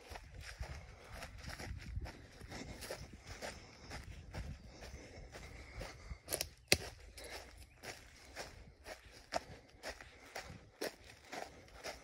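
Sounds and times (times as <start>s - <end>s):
footsteps crunching on needles and twigs: 0.0s - 12.0s.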